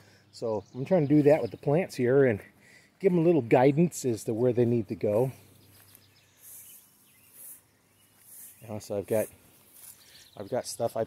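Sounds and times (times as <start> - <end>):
faint outdoor background: 0.0 - 11.0
soft high hisses: 5.8 - 10.4.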